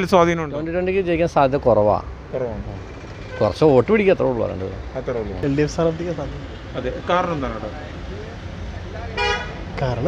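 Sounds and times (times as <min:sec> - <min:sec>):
road traffic rumble: 0:00.0 - 0:10.0
vehicle horn toot: 0:03.3 - 0:03.6, 0:09.2 - 0:09.6.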